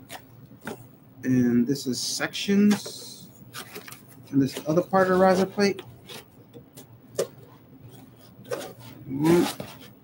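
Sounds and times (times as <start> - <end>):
hands handling cardboard packaging: 2.7 - 10.0.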